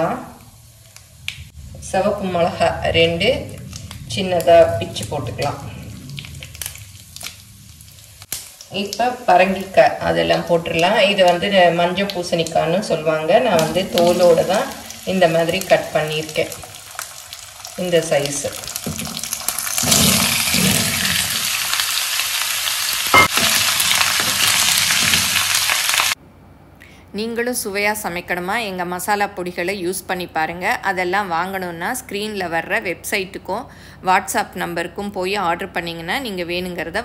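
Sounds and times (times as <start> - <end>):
oil sizzling in a pan: 5.8 - 12.6, 13.4 - 26.2
sharp knock: 23.2 - 23.7.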